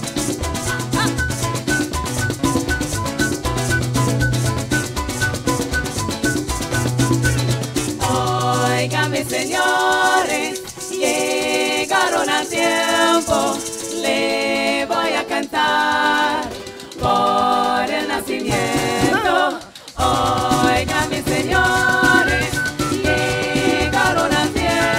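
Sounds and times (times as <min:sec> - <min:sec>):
maracas shaking: 0:00.0 - 0:24.9
strummed guitar and cuatro: 0:00.0 - 0:24.9
bass line: 0:00.4 - 0:09.1
voices singing in harmony: 0:08.0 - 0:24.9.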